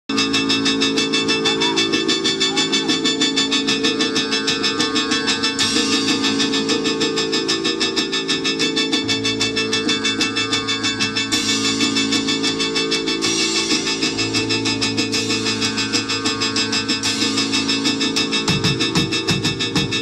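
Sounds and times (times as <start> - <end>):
drums and percussion beat: 0.1 - 20.0
held low chords: 0.1 - 20.0.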